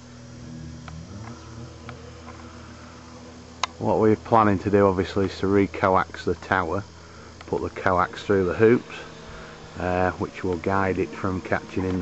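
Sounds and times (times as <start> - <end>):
low buzzing hum: 0.0 - 12.0.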